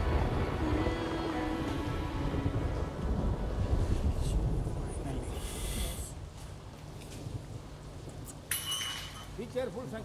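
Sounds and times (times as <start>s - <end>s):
soft background music: 0.0s - 5.0s.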